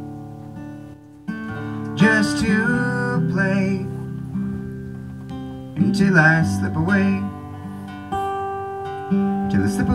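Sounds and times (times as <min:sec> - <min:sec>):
acoustic guitar chords: 0:00.0 - 0:09.9.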